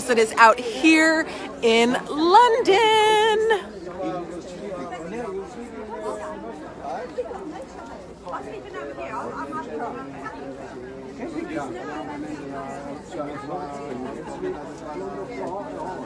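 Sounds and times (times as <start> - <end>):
background chatter: 0.0 - 16.0.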